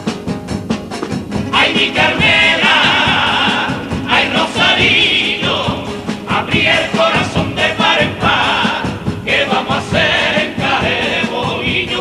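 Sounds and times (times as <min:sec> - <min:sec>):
rhythmic accompaniment: 0:00.0 - 0:12.0
male chorus singing in harmony: 0:01.4 - 0:12.0.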